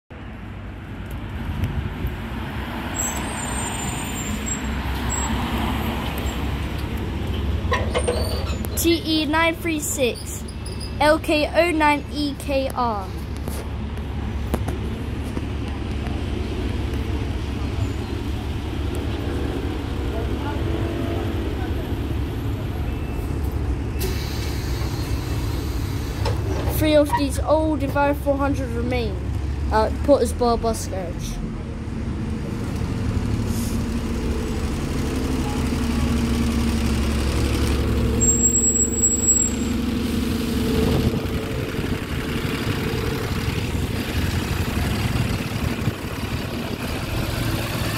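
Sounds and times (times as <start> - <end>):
bus diesel engine idling: 3.2 - 47.9.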